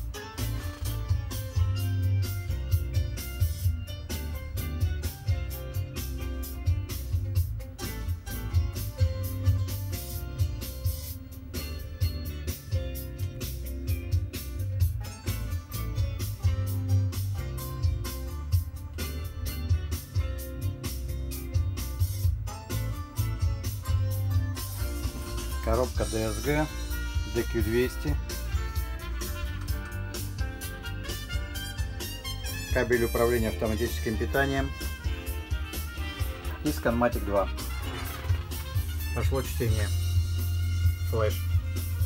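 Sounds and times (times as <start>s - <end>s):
music with heavy bass: 0.0s - 42.0s.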